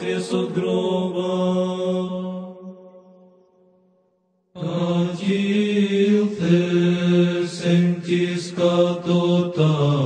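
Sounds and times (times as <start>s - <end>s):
church choir chanting: 0.0s - 3.3s, 4.6s - 10.0s.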